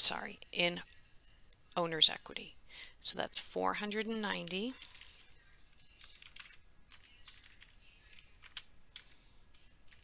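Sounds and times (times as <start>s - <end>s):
computer keyboard typing: 4.8s - 9.2s.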